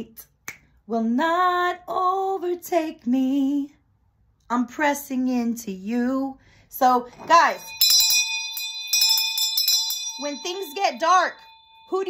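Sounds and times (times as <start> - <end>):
hand bell ringing: 7.2 - 12.0.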